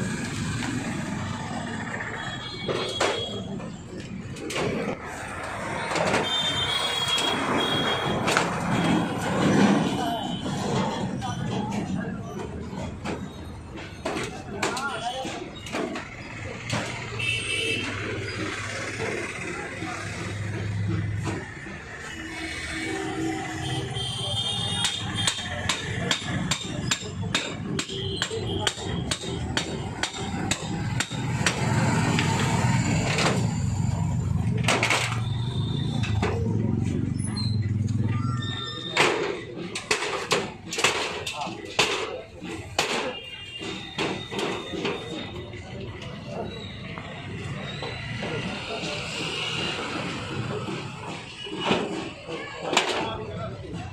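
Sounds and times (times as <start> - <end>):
street noise: 0.0 - 53.9
voices: 0.0 - 53.9.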